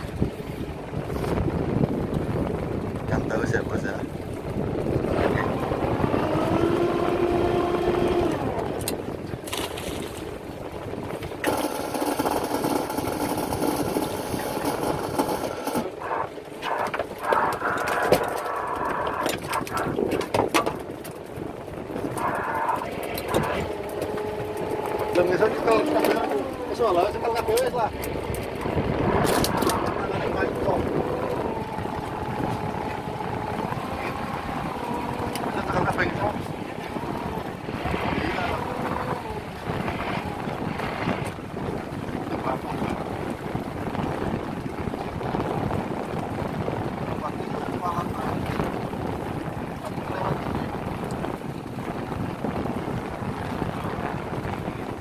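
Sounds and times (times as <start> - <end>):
boat engine running: 0.0 - 55.0
people talking: 3.1 - 4.1, 25.1 - 28.0, 29.0 - 31.6, 35.4 - 37.4, 38.2 - 39.4, 42.3 - 43.1, 47.2 - 48.5, 49.8 - 50.6.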